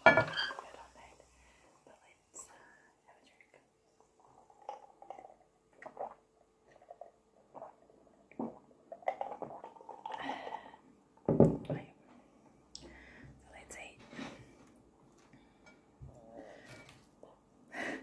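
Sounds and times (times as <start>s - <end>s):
glass clinking: 0.0s - 0.6s.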